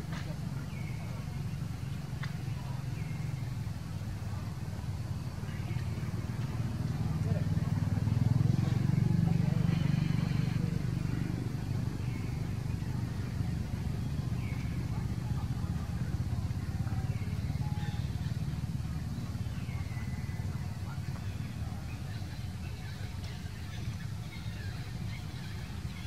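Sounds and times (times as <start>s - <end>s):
vehicle engine passing: 5.6s - 22.1s.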